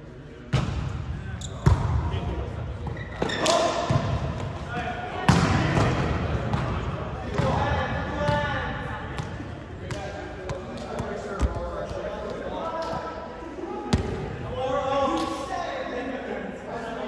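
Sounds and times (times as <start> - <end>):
players' voices and shouts echoing: 0.0 - 17.0
ball bouncing on court floor: 1.5 - 2.0, 5.2 - 7.6.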